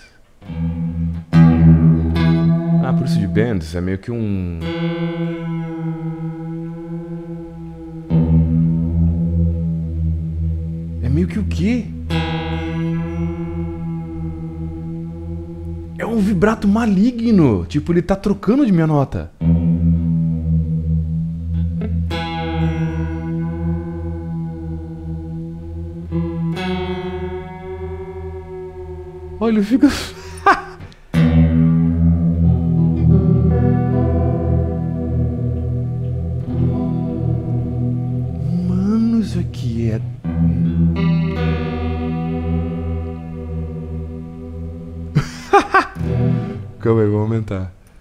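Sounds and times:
electric guitar with vibrato: 0.0s - 17.7s, 19.4s - 47.0s.

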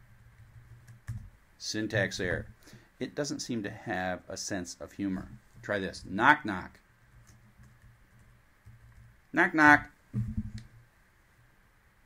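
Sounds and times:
laptop keyboard clicks: 0.4s - 1.3s.

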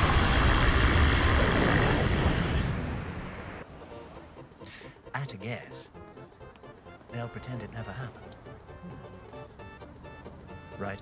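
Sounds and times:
roaring blast of fire: 0.0s - 3.6s.

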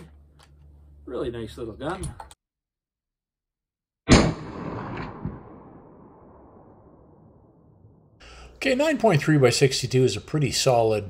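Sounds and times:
rifle shot with echo: 4.1s - 7.3s.

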